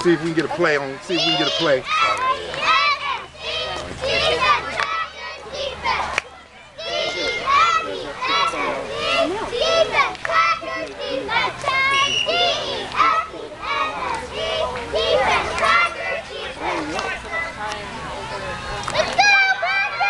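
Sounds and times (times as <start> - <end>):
children shouting: 0.0 - 20.0.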